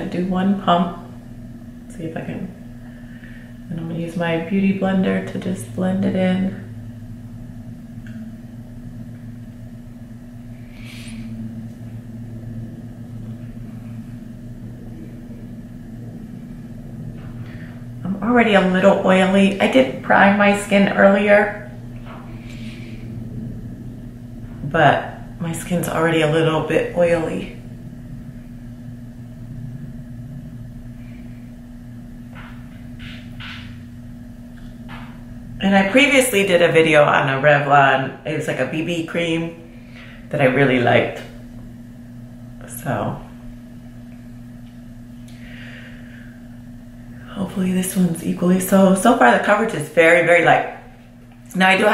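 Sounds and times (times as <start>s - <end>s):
low background hum: 0.0s - 51.9s
short soft hissing: 10.7s - 11.3s.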